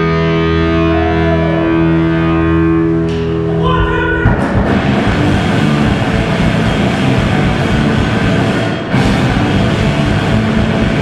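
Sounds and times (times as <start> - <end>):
loud live rock band: 0.0 - 11.0.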